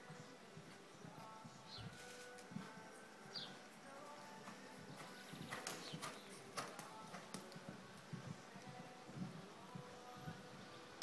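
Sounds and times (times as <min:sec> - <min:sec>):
faint background music: 0:00.0 - 0:11.0
horse hoofbeats on sand: 0:04.0 - 0:10.3.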